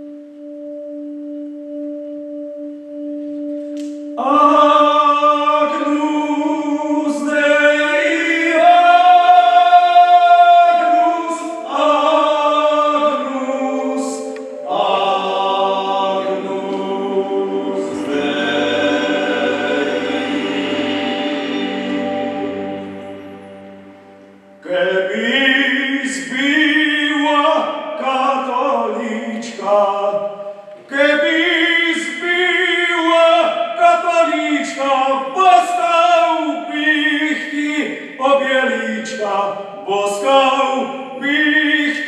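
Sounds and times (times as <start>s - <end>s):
keyboard drone: 0.0s - 28.1s
men singing in harmony: 4.2s - 42.0s.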